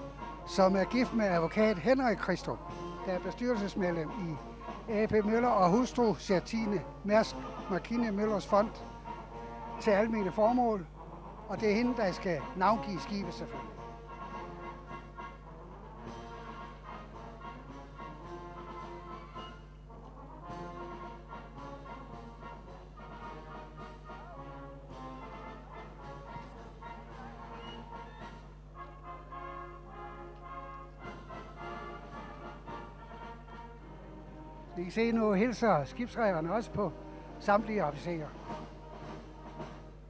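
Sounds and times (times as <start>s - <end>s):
brass instruments playing: 0.0s - 40.0s.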